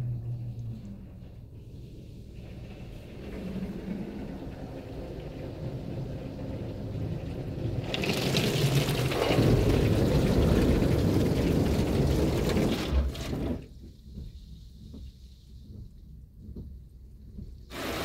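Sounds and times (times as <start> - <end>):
car wash water spray: 3.8 - 13.6, 17.7 - 18.0.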